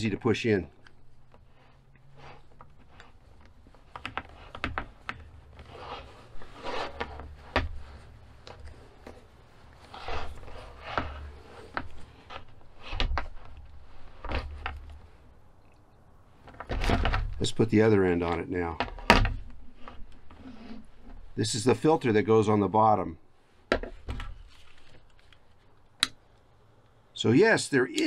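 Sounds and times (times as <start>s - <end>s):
plastic and hose rubbing and clicking: 0.7s - 22.0s, 23.8s - 27.0s.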